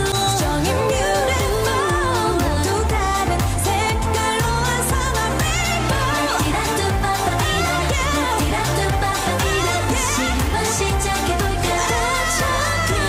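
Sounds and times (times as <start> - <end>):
bass line and dance beat: 0.0 - 13.0
women singing pop song: 0.0 - 13.0.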